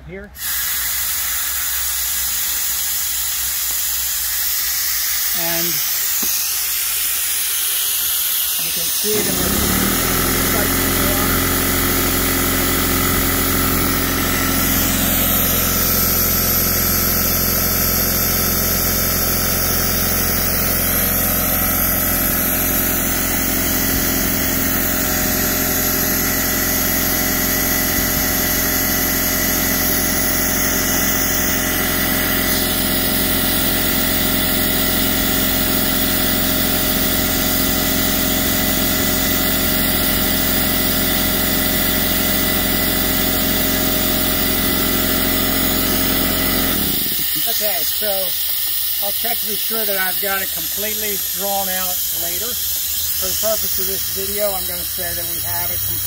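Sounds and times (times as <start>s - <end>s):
shop vacuum motor running: 0.0s - 56.0s.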